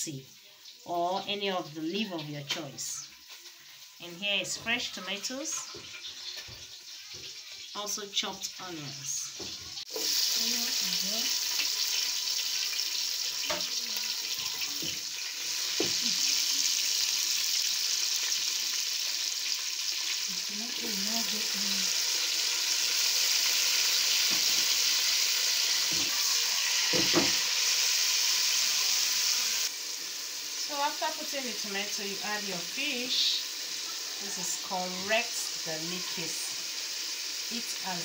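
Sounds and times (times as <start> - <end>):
onions sizzling in hot oil: 0.0 - 38.0.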